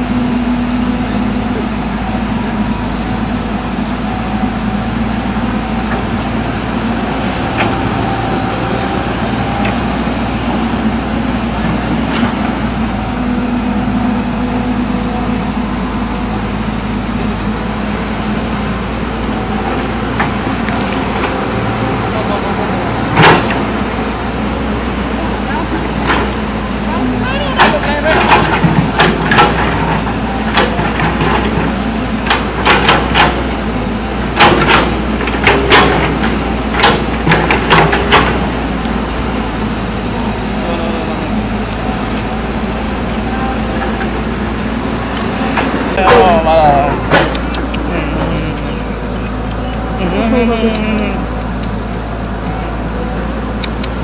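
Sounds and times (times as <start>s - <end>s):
excavator diesel engine running: 0.0s - 54.0s
short voice exclamation: 47.7s - 52.8s.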